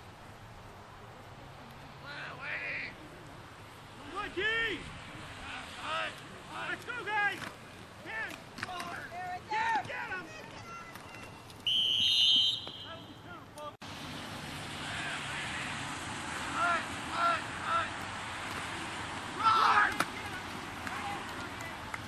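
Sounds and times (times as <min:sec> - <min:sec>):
players shouting: 0:03.9 - 0:13.8, 0:14.7 - 0:22.0
short shouted calls: 0:08.9 - 0:13.4, 0:16.4 - 0:18.0, 0:19.3 - 0:21.9
steady hiss: 0:11.5 - 0:22.0
referee's whistle blast: 0:11.6 - 0:13.3.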